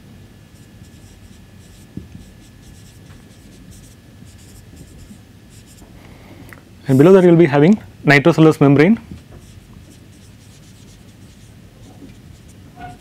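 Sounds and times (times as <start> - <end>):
marker pen scratching on whiteboard: 0.6 - 5.8, 9.4 - 13.0.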